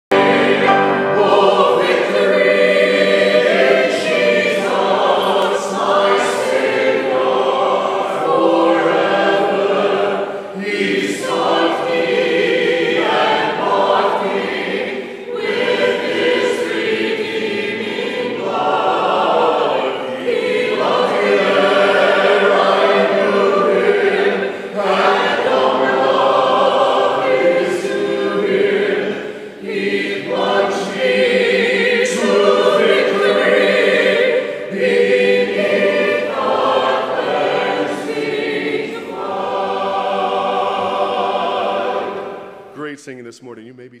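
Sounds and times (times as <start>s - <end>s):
congregation singing a hymn: 0.1s - 43.4s.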